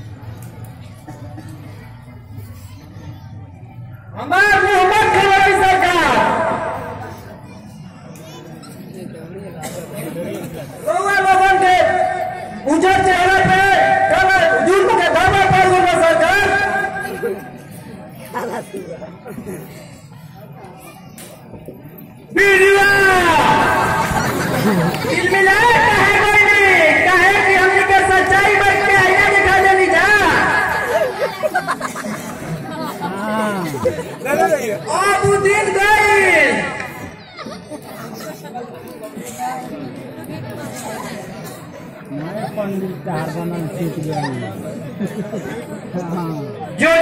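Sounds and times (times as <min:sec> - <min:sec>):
background chatter of voices: 0:00.0 - 0:47.0.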